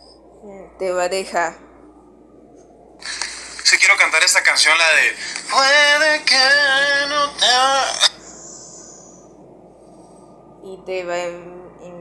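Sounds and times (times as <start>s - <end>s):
man's voice: 3.0s - 8.2s
faint hiss: 3.0s - 10.8s.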